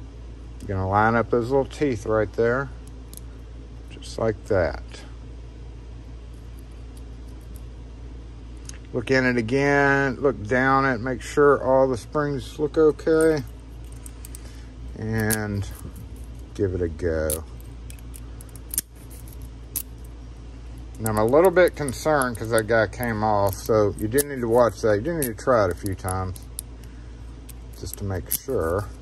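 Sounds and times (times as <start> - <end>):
low room hum: 0.0 - 29.0.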